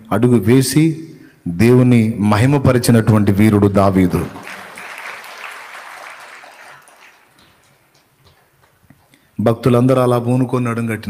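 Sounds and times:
audience clapping: 3.9s - 9.2s.

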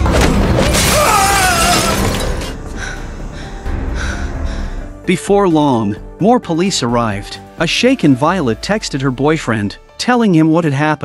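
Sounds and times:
window glass shattering: 0.0s - 2.7s
dramatic score music: 0.0s - 10.4s.

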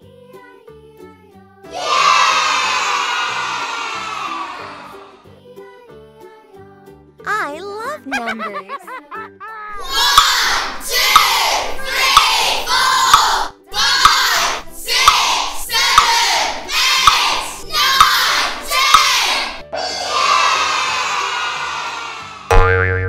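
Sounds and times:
crowd cheering: 1.7s - 5.2s, 9.8s - 22.5s
springy boing: 9.8s - 11.4s, 22.5s - 23.0s
sharp click: 10.1s - 19.6s
musical note: 22.5s - 23.0s.

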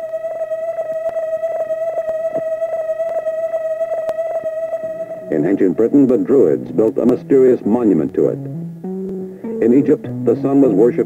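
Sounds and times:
faint ticks: 0.0s - 5.1s
sustained drone tone: 0.0s - 11.0s.

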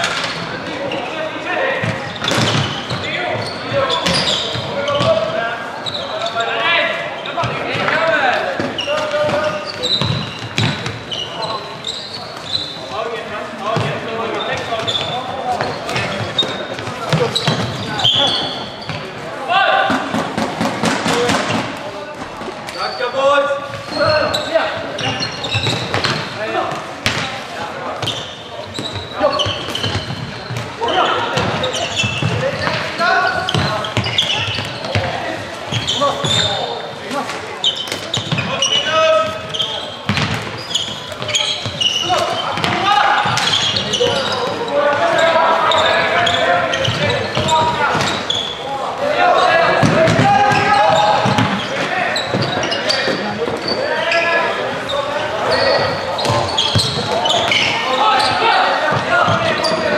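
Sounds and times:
echoing voices calling out: 0.0s - 59.9s.

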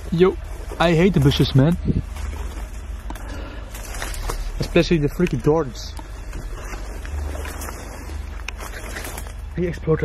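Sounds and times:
rustling of brush and twigs: 0.0s - 10.0s
wind buffeting microphone: 1.2s - 3.0s.

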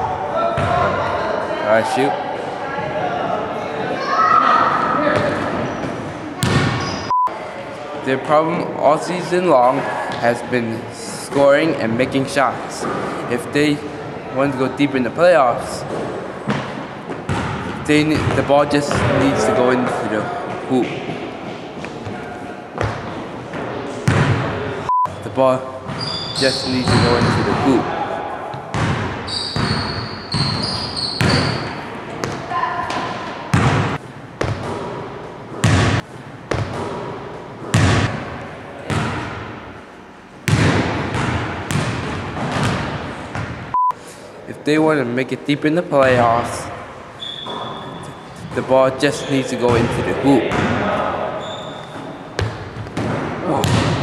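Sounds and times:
basketball bouncing on gym floor: 0.6s - 0.8s, 5.2s - 6.9s, 16.5s - 19.2s, 22.8s - 24.5s, 26.8s - 27.7s, 28.5s - 35.0s, 35.6s - 38.2s, 40.4s - 43.7s, 52.4s - 54.0s
short high squeaks: 47.2s - 48.4s.

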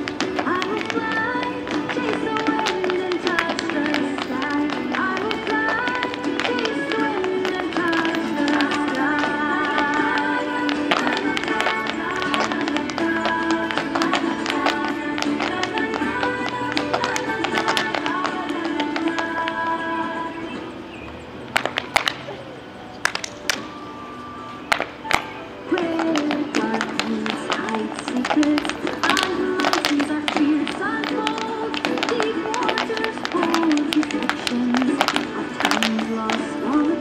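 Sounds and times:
hard shoes tapping on pavement: 0.0s - 20.7s, 21.5s - 22.4s, 23.0s - 23.8s, 24.7s - 37.0s
lively dance tune: 0.0s - 20.8s, 23.1s - 37.0s.

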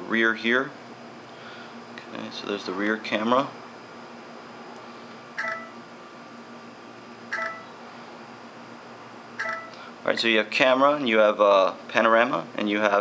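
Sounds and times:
faint steady hum: 0.0s - 13.0s
short electronic beeps: 5.4s - 5.8s, 7.3s - 7.7s, 9.4s - 9.7s.

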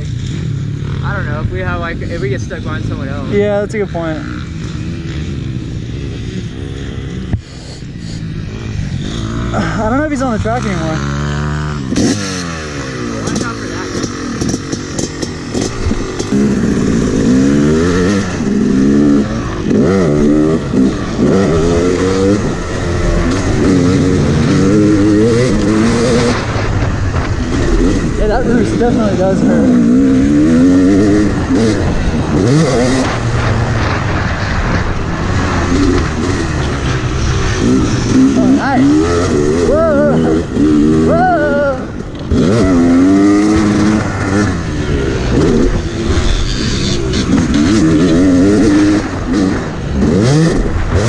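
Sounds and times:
dirt bike engine revving: 0.0s - 51.0s.

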